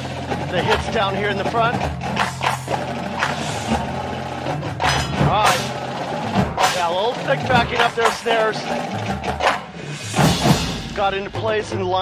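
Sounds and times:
drum corps percussion playing: 0.0s - 12.0s.

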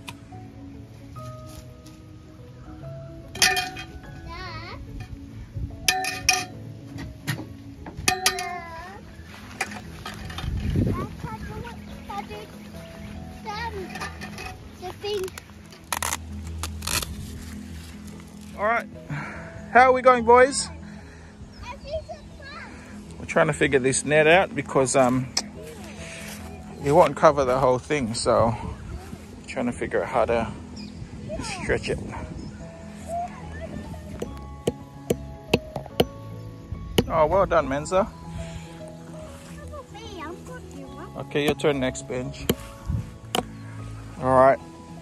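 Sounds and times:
background music: 0.0s - 45.0s.

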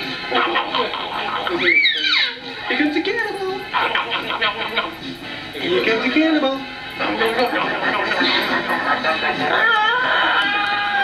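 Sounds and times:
voices: 0.3s - 11.0s
baby squealing and babbling: 1.6s - 2.4s.

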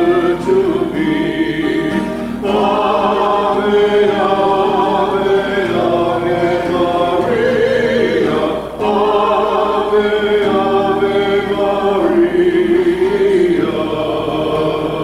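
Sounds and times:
choir singing a hymn: 0.0s - 15.0s.

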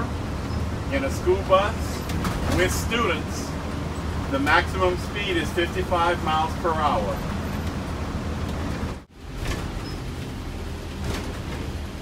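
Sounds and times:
bus engine rumble: 0.0s - 12.0s
road noise: 0.0s - 12.0s.

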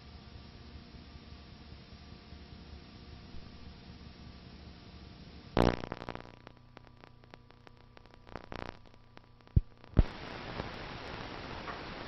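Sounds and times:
old film hiss and hum: 0.0s - 12.0s
crackling clicks: 5.6s - 12.0s.

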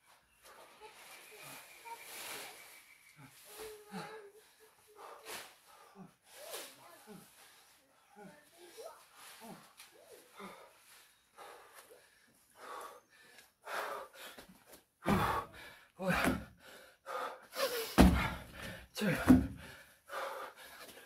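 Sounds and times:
man gasping breaths: 11.4s - 21.0s
feet thudding on wooden deck: 15.0s - 16.5s, 17.9s - 19.8s.

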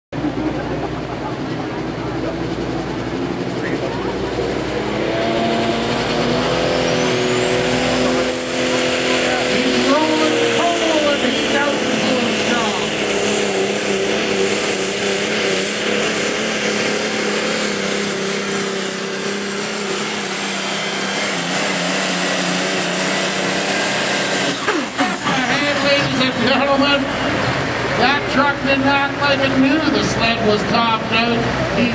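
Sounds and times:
diesel engine at full throttle: 0.1s - 31.9s
turbocharger whistle: 5.3s - 27.5s.

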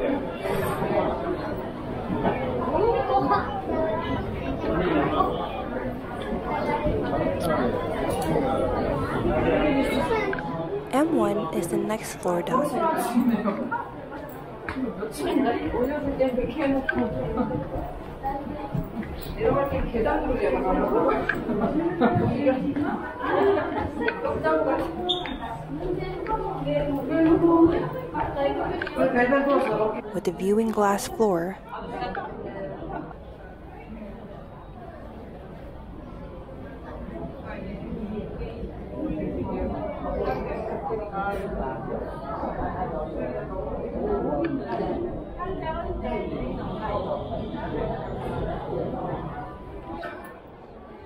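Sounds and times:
people chattering: 0.0s - 51.0s.

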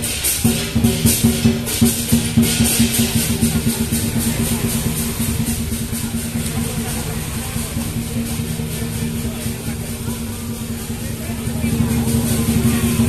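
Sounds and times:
cymbals crashing: 0.0s - 13.0s
drum beating steady rhythm: 0.0s - 13.0s
low engine hum: 3.2s - 13.0s.

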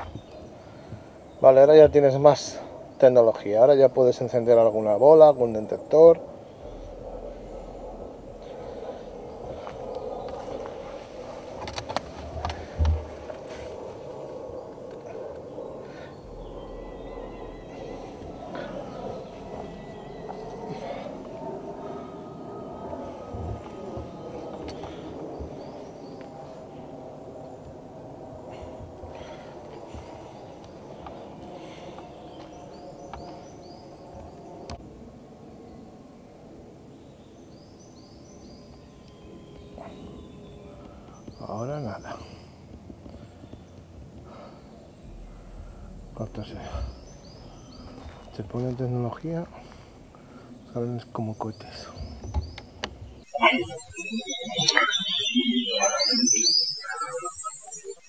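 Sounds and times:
low background hum: 0.0s - 57.9s
faint bird chirps: 14.2s - 26.6s, 37.0s - 42.4s, 43.2s - 58.0s.

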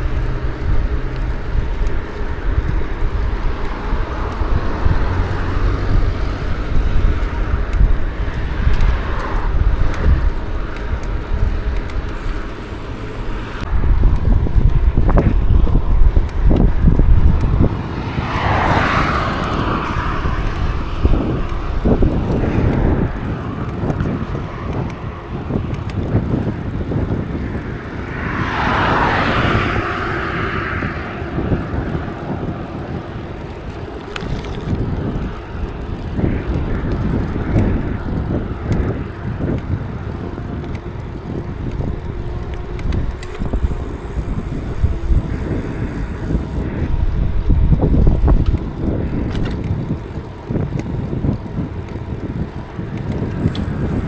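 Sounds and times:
bicycle tyres rolling: 0.0s - 54.0s
wind buffeting microphone: 0.0s - 54.0s.

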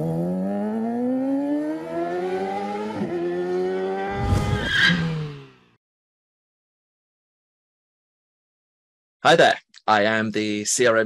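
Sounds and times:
motorbike engine revving: 0.0s - 5.8s.

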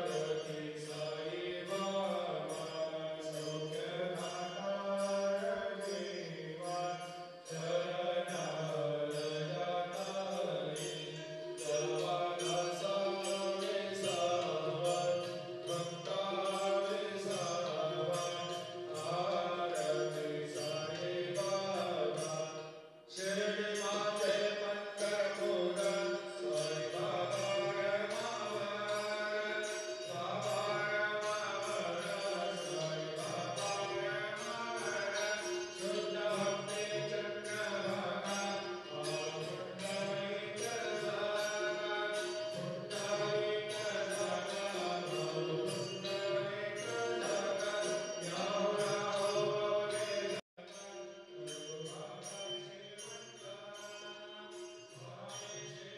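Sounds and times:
voices singing a chant: 0.0s - 55.9s.

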